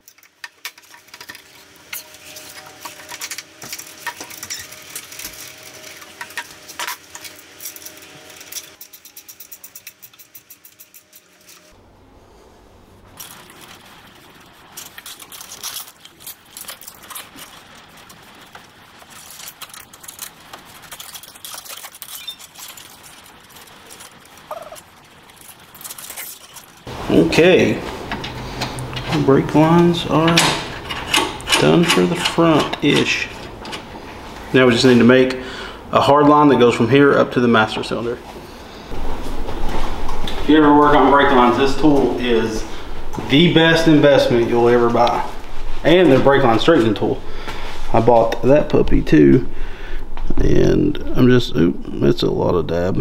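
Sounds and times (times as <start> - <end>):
tools clattering against metal: 0.0 - 11.8, 30.1 - 33.9.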